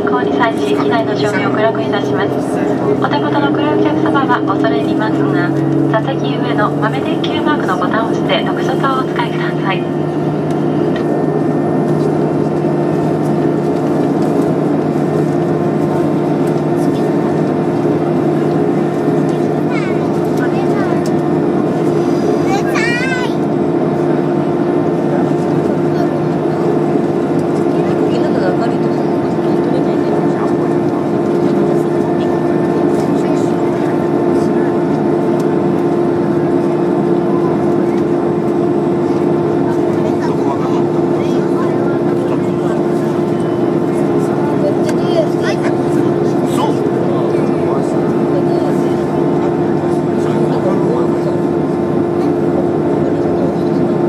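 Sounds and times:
airliner cabin engine drone: 0.0s - 54.0s.

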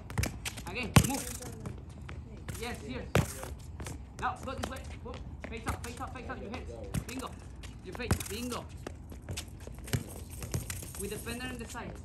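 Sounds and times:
ball kicked on concrete: 0.0s - 12.0s
running footsteps on concrete: 0.0s - 12.0s.

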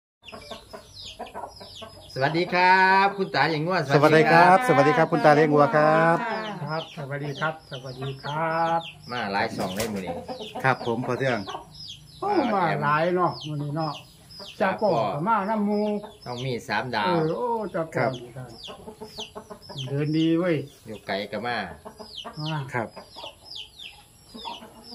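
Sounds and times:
birds calling: 0.2s - 24.9s
chickens clucking: 0.2s - 24.9s
high falling chirps: 0.2s - 24.9s.

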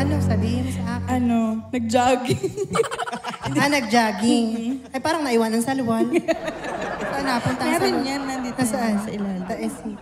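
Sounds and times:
people laughing through pa: 2.3s - 4.9s, 5.9s - 10.0s.

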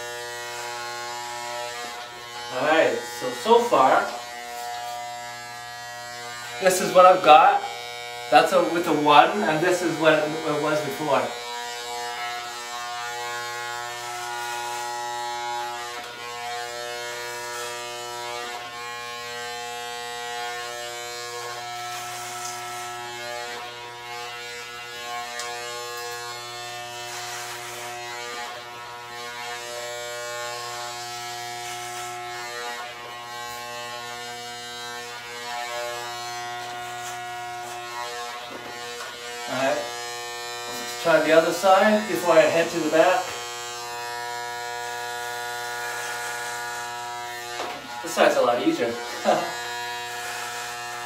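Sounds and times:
electric hair clippers buzzing: 0.0s - 51.0s.

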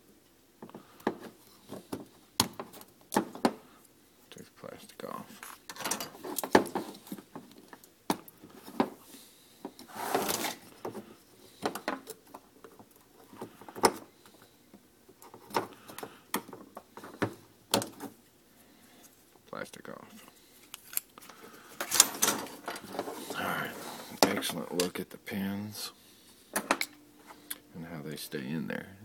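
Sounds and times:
plastic scrape: 9.8s - 11.1s, 21.8s - 24.3s.

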